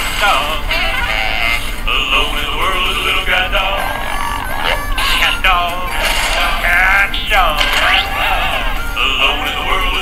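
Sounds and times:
jaw harp twanging melody: 0:04.2 - 0:09.0.

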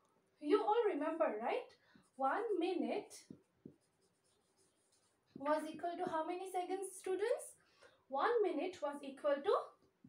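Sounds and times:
marker writing on whiteboard: 0:00.6 - 0:06.8.

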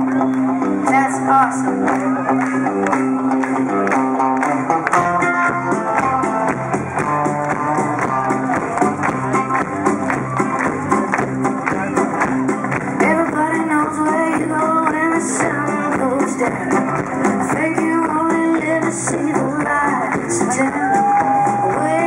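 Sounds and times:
drums: 0:00.0 - 0:22.0
electric guitars: 0:00.0 - 0:22.0.

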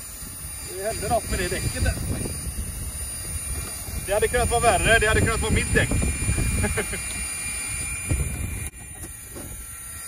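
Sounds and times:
wind buffeting microphone: 0:00.0 - 0:09.8.

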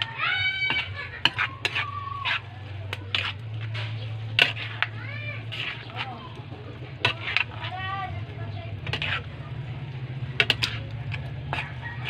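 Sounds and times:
metal spoon scraping metal pan: 0:00.0 - 0:09.5, 0:10.1 - 0:12.0.

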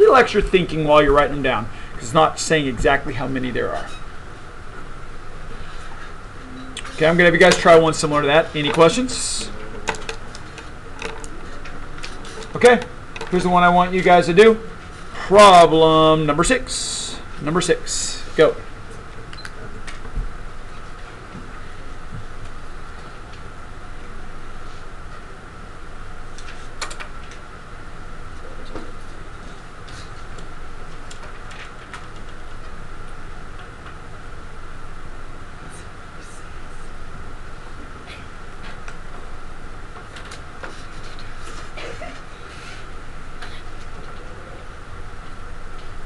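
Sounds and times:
low room noise: 0:00.0 - 0:46.0.

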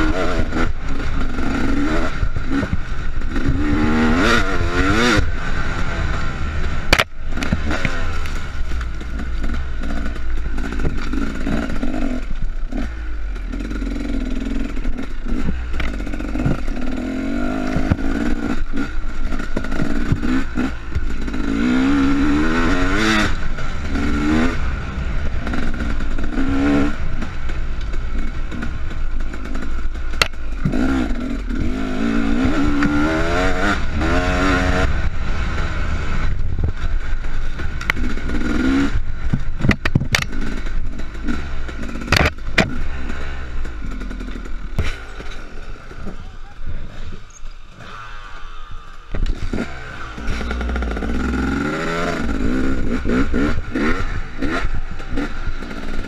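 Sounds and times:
dirt bike engine revving: 0:00.0 - 0:56.0
wind rumble on microphone: 0:32.4 - 0:40.8
sharp knocks from bumps: 0:39.3 - 0:40.4.

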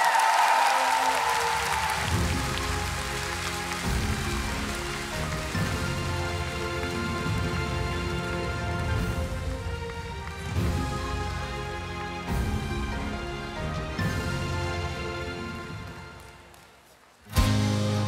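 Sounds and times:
audience applause: 0:00.0 - 0:17.8.

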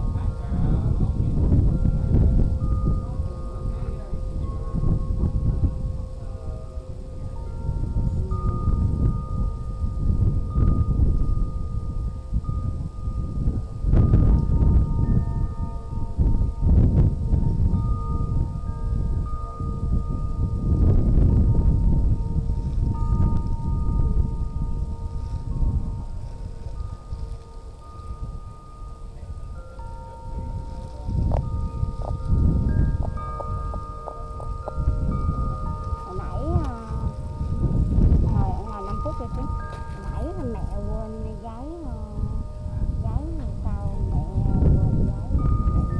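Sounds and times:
wind chime ringing: 0:00.0 - 0:45.9
wind rumbling on microphone: 0:00.0 - 0:45.9.

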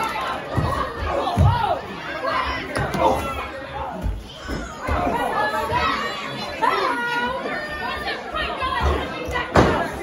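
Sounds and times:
children's voices: 0:00.0 - 0:10.0
crowd shouting and chattering: 0:00.0 - 0:10.0.

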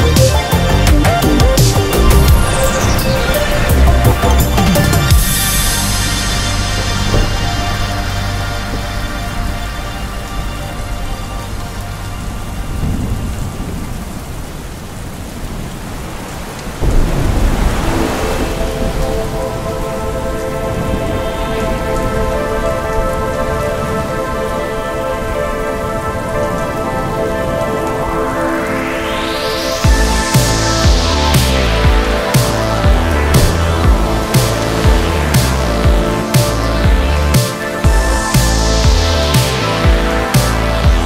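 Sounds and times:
synth drone: 0:00.0 - 0:14.1, 0:16.8 - 0:41.0
steady rain: 0:00.0 - 0:41.0
thunder rumble: 0:00.0 - 0:41.0
rising whoosh: 0:01.2 - 0:08.4, 0:16.8 - 0:21.2, 0:27.8 - 0:36.5.

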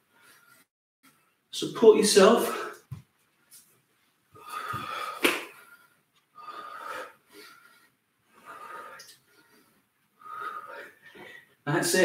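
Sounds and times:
man breathing out hard: 0:04.4 - 0:11.5.

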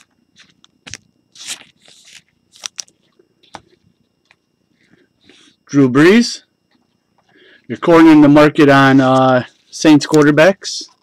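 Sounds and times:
cards sliding rustles: 0:00.0 - 0:03.7.

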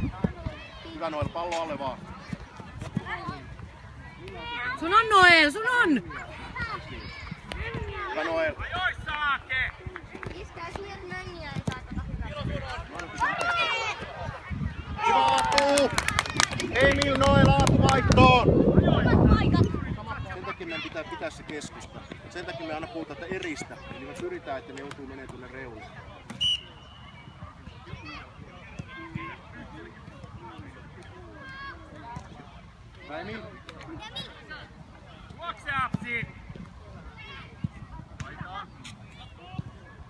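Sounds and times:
crowd shouting and cheering: 0:12.4 - 0:21.2.

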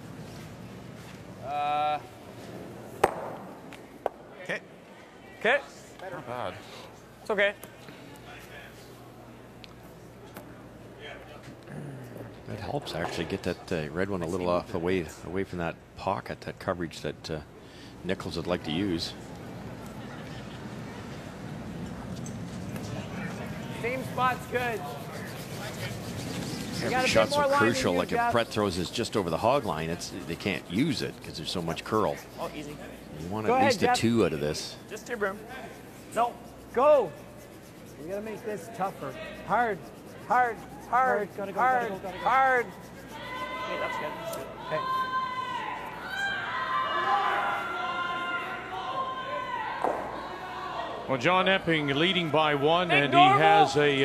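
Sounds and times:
sharp knock: 0:03.0 - 0:03.5
people yelling long calls: 0:42.0 - 0:51.0.

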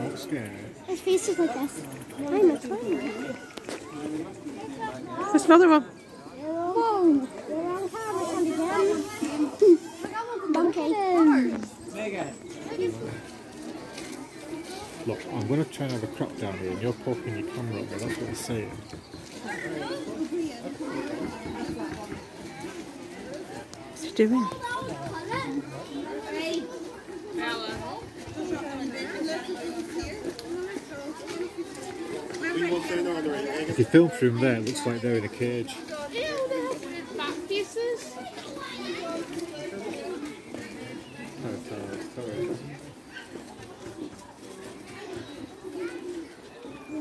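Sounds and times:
children chattering and calling: 0:00.0 - 0:47.0
faint voices: 0:00.0 - 0:47.0
people talking in background: 0:00.0 - 0:47.0.

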